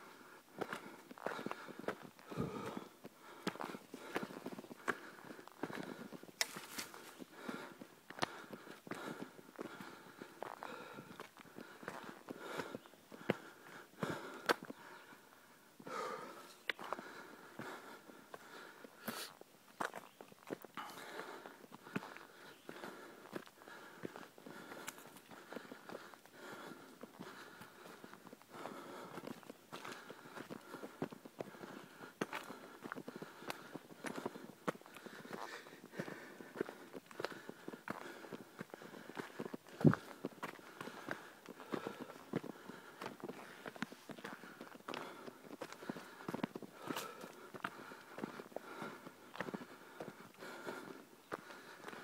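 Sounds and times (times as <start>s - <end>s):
footsteps on dirt trail: 0.0s - 52.0s.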